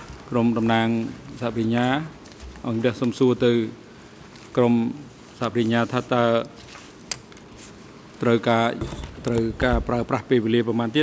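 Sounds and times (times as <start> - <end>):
man speaking: 0.3 - 3.8, 4.5 - 6.6, 8.2 - 11.0.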